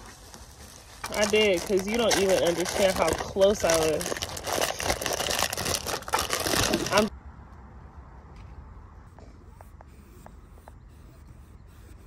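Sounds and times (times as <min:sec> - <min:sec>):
plastic packaging crinkling: 0:00.0 - 0:07.1.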